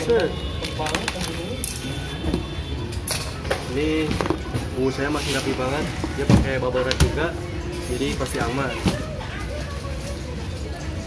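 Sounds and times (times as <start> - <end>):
bubble wrap and plastic crinkling: 0.0 - 2.0.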